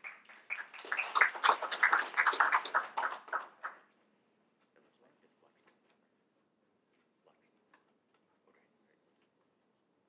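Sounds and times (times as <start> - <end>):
audience applauding: 0.0 - 3.8.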